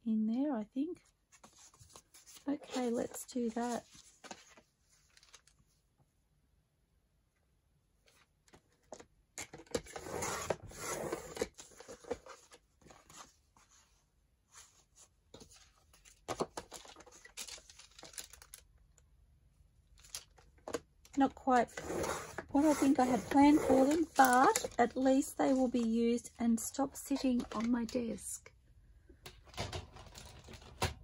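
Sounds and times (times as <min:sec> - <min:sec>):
paper rustling: 0:01.3 - 0:05.7, 0:14.5 - 0:18.6, 0:22.0 - 0:25.9.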